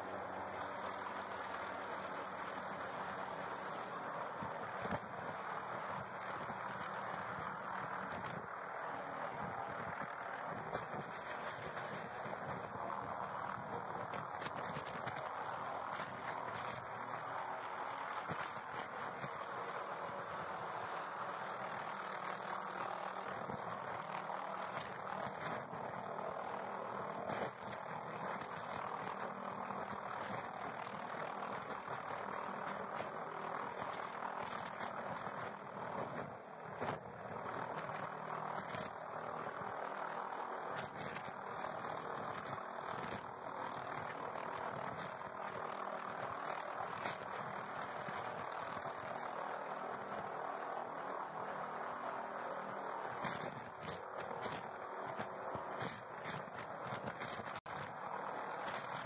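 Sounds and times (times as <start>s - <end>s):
helicopter hovering: 0.0s - 59.0s.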